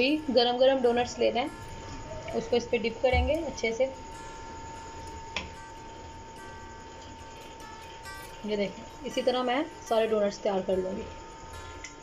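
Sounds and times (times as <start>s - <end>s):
faint high-pitched hum: 0.0s - 12.0s.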